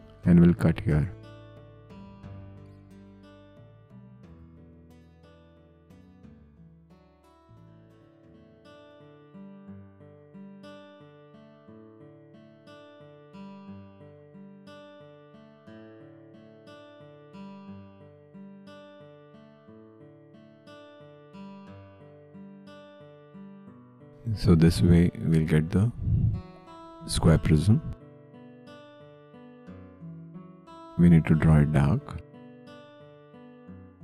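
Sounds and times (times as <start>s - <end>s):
plucked acoustic guitar music: 0.0s - 34.0s.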